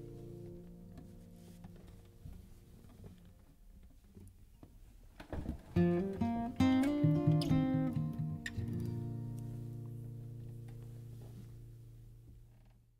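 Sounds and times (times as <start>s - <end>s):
acoustic guitars playing: 0.0s - 2.6s, 5.7s - 12.1s.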